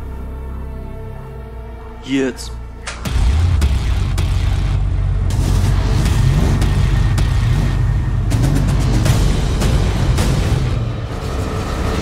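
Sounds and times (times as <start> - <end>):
car engine starting and revving: 2.9 - 12.0.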